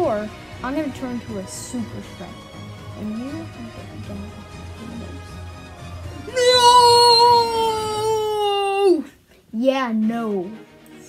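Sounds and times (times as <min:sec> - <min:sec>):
child's high-pitched cry: 0:06.3 - 0:09.0.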